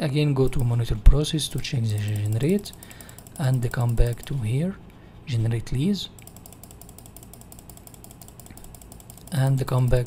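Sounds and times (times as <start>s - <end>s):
mouse scroll wheel clicking: 1.9s - 4.3s, 6.2s - 10.0s.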